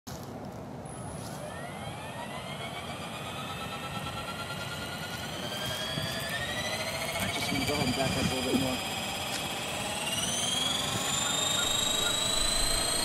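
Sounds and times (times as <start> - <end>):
rc helicopter rotor whine: 0.9 - 13.0.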